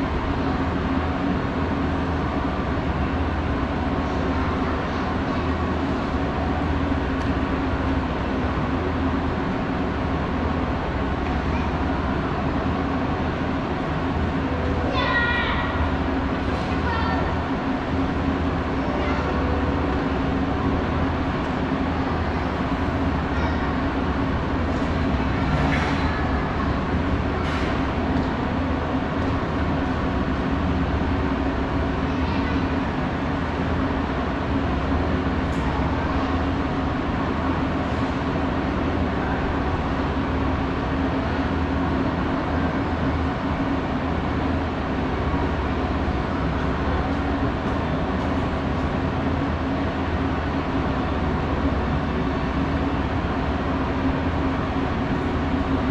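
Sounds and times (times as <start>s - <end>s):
moving walkway mechanical drone: 0.0s - 55.9s.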